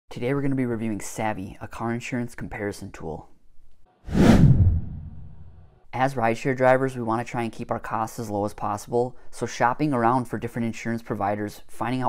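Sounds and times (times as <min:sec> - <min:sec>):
whoosh into low rumble: 0:04.1 - 0:05.7.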